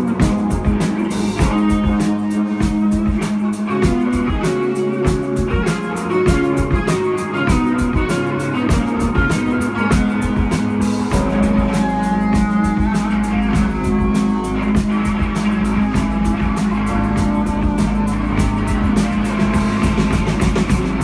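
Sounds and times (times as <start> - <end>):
drum kit beat: 0.0 - 21.0
electric guitar riff: 0.0 - 21.0.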